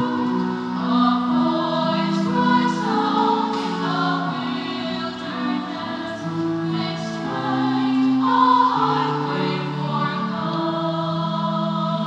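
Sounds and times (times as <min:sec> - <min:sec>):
choir singing a slow hymn: 0:00.0 - 0:12.0.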